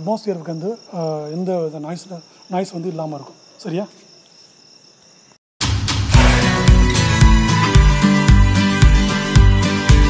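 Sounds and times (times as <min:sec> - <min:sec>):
music with plucked strings: 0:06.1 - 0:10.0.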